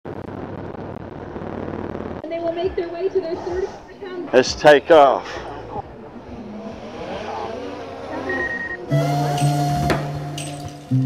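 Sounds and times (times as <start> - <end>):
drone propellers buzzing: 5.2 - 11.0.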